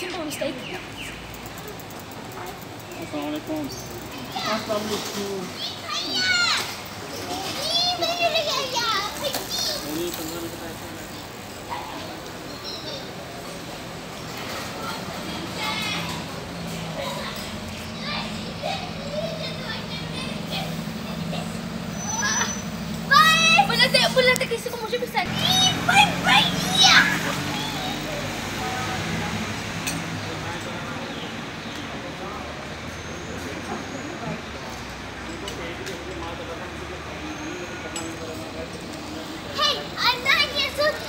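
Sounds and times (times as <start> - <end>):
children calling and shouting: 0.0 - 41.0
vehicle engine idling: 13.0 - 31.3.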